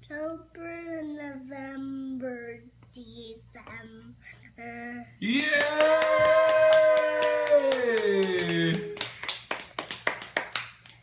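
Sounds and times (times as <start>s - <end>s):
hand clapping: 5.3s - 11.0s.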